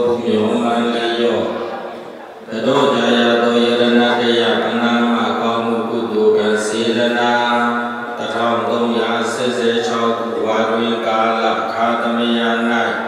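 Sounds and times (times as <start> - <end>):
devotional chanting: 0.0 - 13.0.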